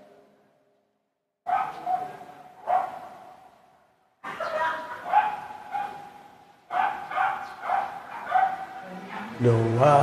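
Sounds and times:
dog barking with echo: 1.5s - 3.5s, 4.3s - 9.4s.

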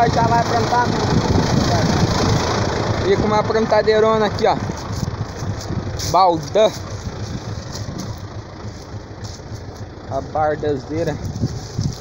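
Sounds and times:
tractor diesel engine running: 0.0s - 12.0s.

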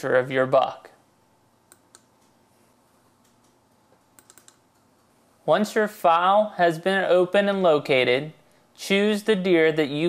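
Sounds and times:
computer mouse clicks: 1.7s - 2.4s, 3.2s - 5.2s.

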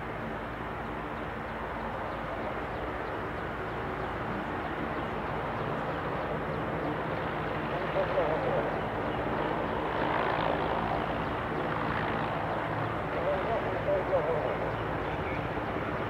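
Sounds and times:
helicopter engines and rotor drone: 0.0s - 16.0s.

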